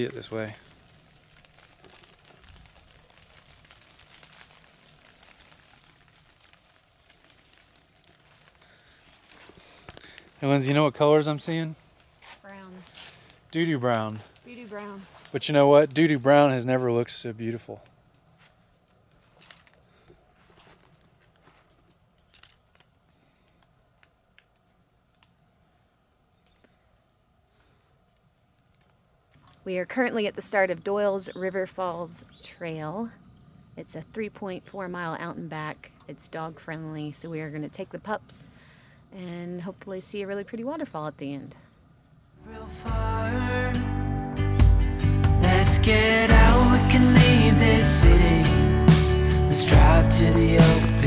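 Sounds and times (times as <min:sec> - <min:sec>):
light crackling ticks: 0:00.0 - 0:10.4, 0:28.0 - 0:29.6
soft even hiss: 0:00.0 - 0:30.1.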